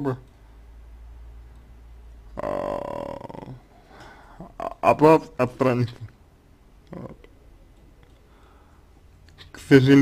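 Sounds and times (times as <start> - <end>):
low steady hum: 0.0 - 10.0
man's creaky hesitation sound: 2.3 - 3.7.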